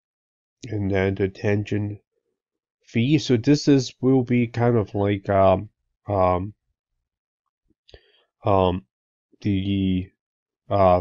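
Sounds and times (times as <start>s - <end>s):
man saying um: 0.6s - 2.0s, 3.0s - 6.5s, 8.5s - 8.8s, 9.5s - 10.0s, 10.7s - 11.0s.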